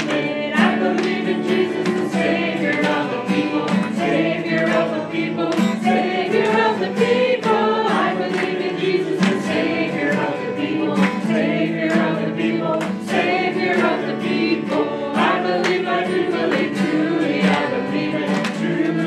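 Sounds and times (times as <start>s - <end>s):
group singing a hymn: 0.0s - 19.0s
strummed acoustic guitars: 0.0s - 19.0s.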